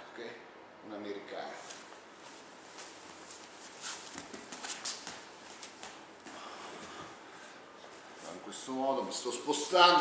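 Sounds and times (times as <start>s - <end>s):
clothing rustle: 1.6s - 8.5s
bodies scuffing on a mat: 1.7s - 7.2s.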